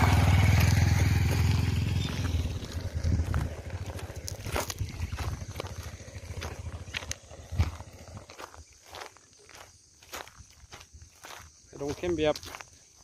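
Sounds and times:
deep rumble: 0.0s - 8.4s
footsteps on gravel: 0.0s - 13.0s.

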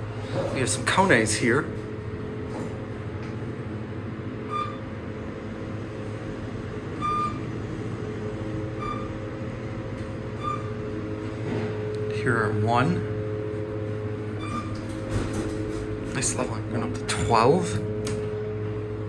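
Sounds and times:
elevator running hum: 0.0s - 19.0s
short single-pitch beeps: 4.5s - 4.8s.

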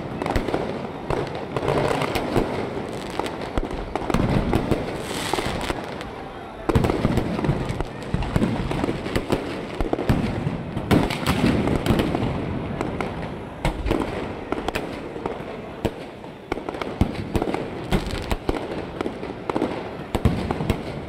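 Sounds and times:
fireworks bangs and crackles: 0.0s - 21.0s.

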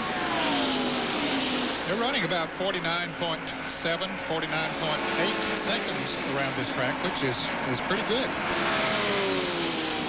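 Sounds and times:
race car engines passing by: 0.0s - 10.0s.

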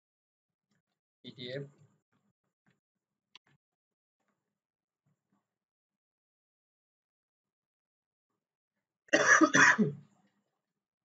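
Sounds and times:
person coughing: 9.2s - 10.0s.

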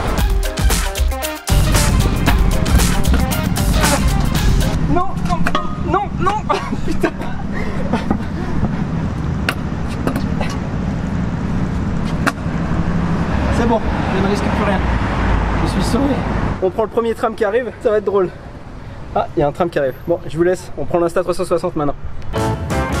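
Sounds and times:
background music: 0.0s - 4.9s, 22.3s - 23.0s
street and wind noise: 1.5s - 23.0s
sharp knocks: 2.0s - 4.0s.

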